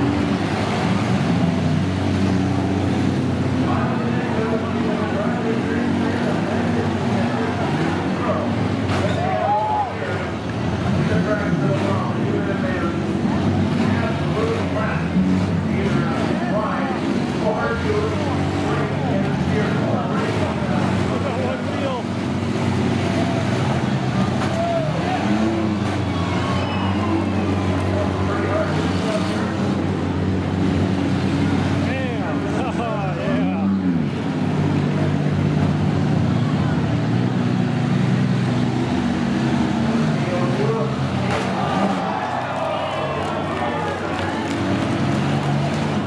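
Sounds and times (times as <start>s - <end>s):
minivan engines revving: 0.0s - 46.0s.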